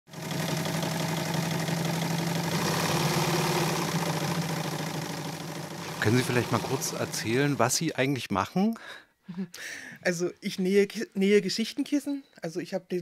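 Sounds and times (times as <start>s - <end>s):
sewing machine running: 0.1s - 7.8s.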